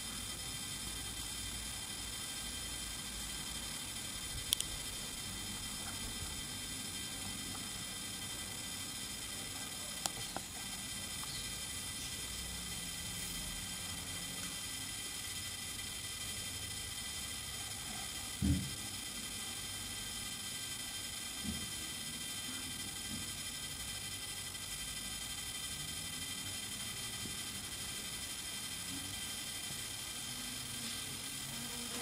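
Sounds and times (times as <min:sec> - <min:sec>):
faint high whine: 0:00.0 - 0:32.0.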